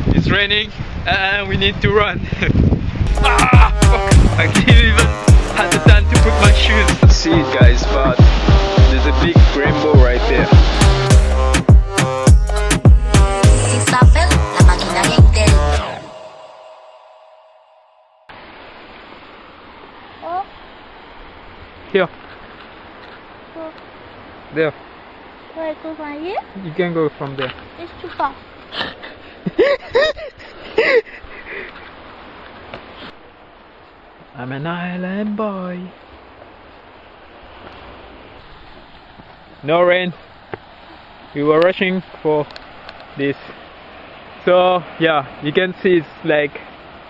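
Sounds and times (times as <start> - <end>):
even hiss: 3.1 - 12.8
music: 3.1 - 18.3.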